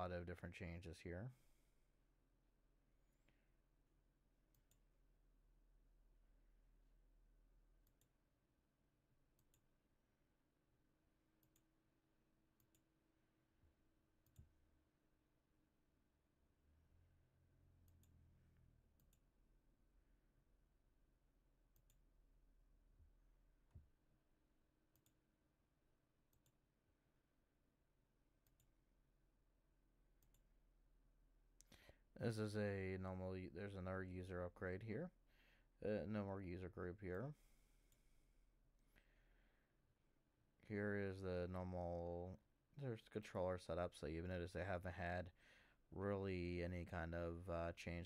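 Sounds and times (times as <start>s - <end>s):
computer mouse clicks: 24.9s - 25.2s, 30.2s - 30.5s.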